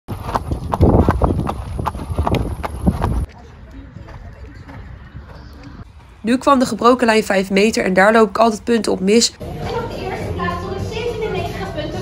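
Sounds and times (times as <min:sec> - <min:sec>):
horse hooves on asphalt: 0:00.1 - 0:06.1.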